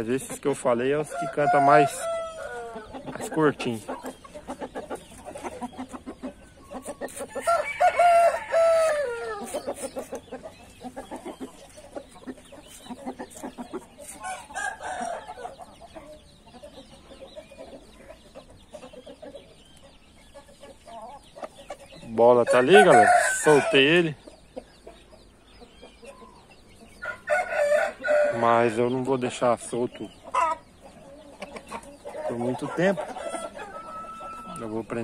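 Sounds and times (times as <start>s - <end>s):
chickens clucking: 0.0s - 35.0s
rooster crowing: 1.0s - 2.9s, 7.4s - 9.5s, 22.5s - 23.8s, 27.0s - 28.4s, 33.3s - 34.6s.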